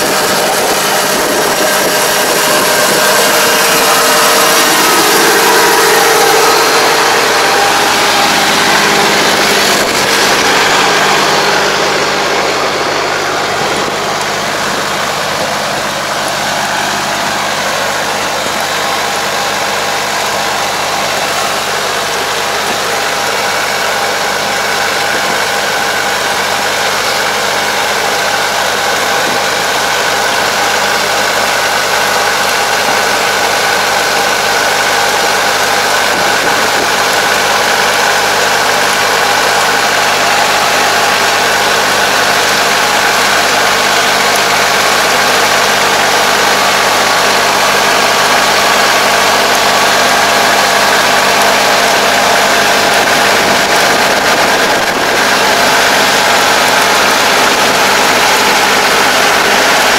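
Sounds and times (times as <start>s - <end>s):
steady mechanical whine: 0.0s - 59.9s
tractor diesel engine running: 0.0s - 59.9s.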